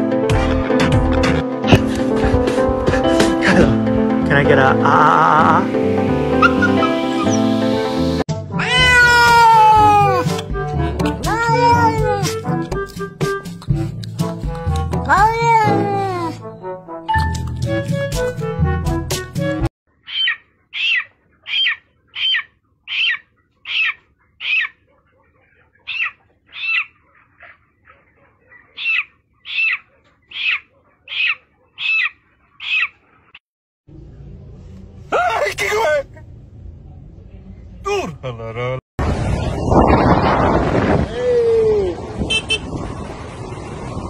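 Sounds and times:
background music: 0.0 - 19.7
chicken calling: 4.8 - 7.9, 20.0 - 33.4
cat meowing: 8.6 - 10.2.

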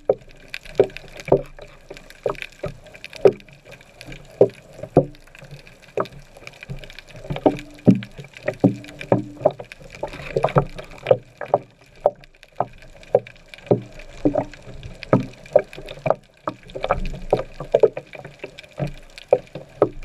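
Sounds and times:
muffled underwater knocks: 0.0 - 20.0
underwater bubbling: 0.0 - 20.0.

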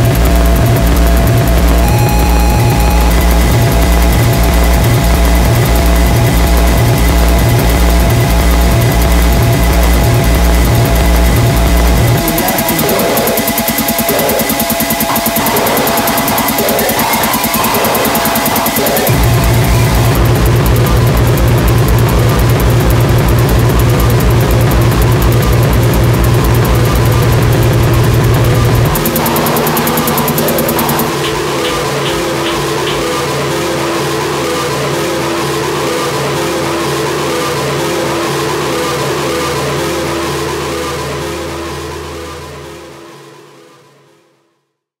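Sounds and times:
pulsing low beat: 0.0 - 33.8
droning tones: 0.0 - 43.1
electronic noise music: 0.0 - 43.3.

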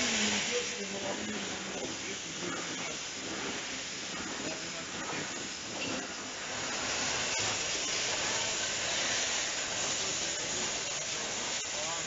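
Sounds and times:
machinery hissing: 0.0 - 12.0.

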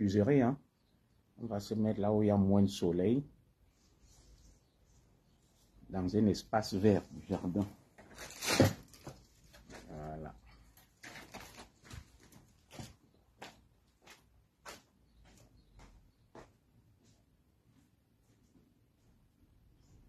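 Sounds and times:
soft footsteps: 11.1 - 20.0.

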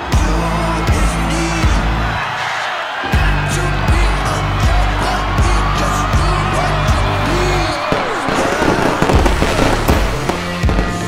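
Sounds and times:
music playing: 0.0 - 11.0
fireworks bangs: 7.6 - 11.0.

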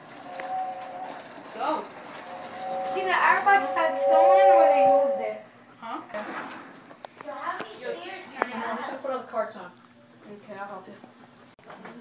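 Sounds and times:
toy train horn chord: 0.0 - 1.2, 2.2 - 5.4
voices: 0.2 - 5.5.

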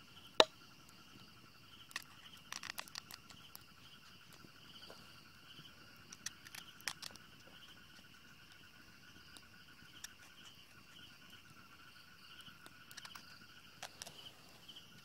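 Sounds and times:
insects trilling: 0.0 - 15.0.

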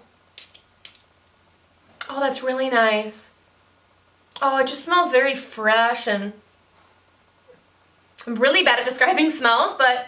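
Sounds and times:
perfume spray bottle spritzes: 0.3 - 1.0.

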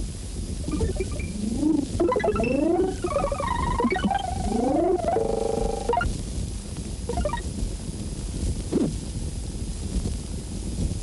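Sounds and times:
buzzing fluttering comic tone: 0.7 - 6.1.

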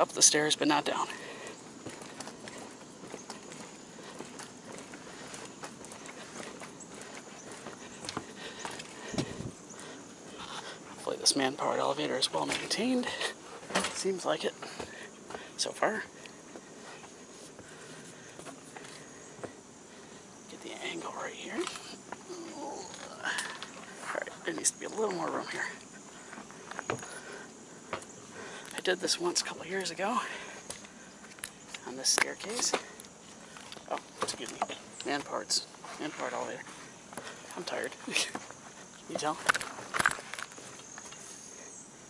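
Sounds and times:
crickets chirring: 0.0 - 42.0
person's wordless voice sounds: 31.8 - 33.0, 33.8 - 36.7.

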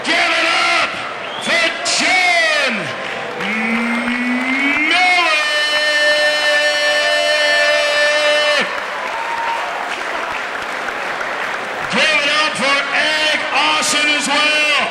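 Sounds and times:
man talking: 0.0 - 8.7, 11.9 - 14.9
man shouting: 0.0 - 8.8
crowd applause: 1.2 - 13.5.

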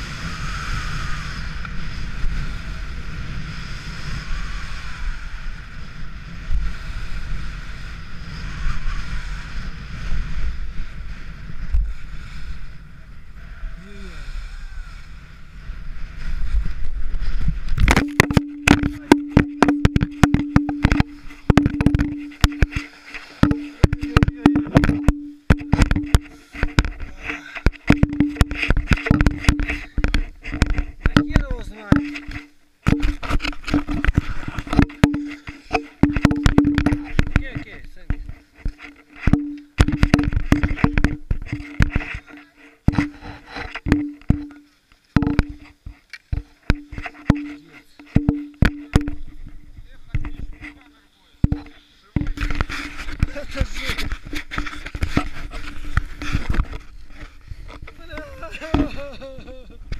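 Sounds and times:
low hum: 14.8 - 37.4, 38.2 - 45.8, 46.7 - 57.4
camera knocking against jacket: 17.7 - 44.6, 45.2 - 50.8, 51.4 - 58.0.

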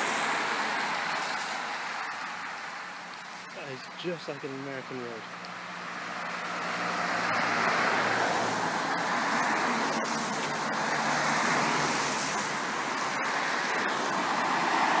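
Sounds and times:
tyres hissing on wet road: 0.0 - 15.0.

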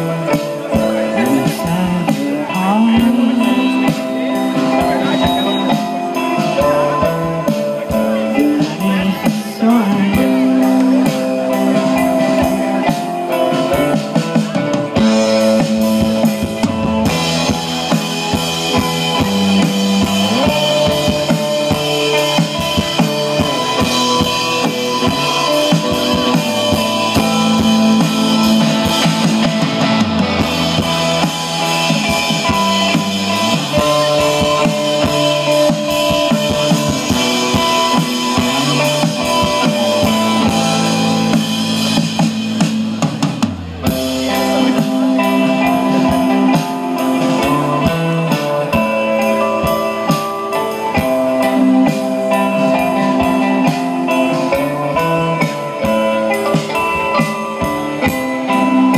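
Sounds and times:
dream-pop band playing: 0.0 - 58.9.

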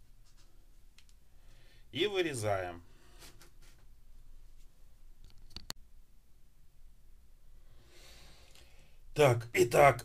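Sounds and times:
faint breathy out-breath: 1.3 - 1.9, 7.6 - 9.0.

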